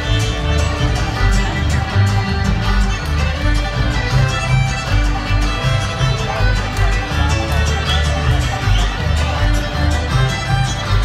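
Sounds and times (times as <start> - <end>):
bluegrass band playing: 0.0 - 11.0
upright bass low notes: 0.0 - 11.0.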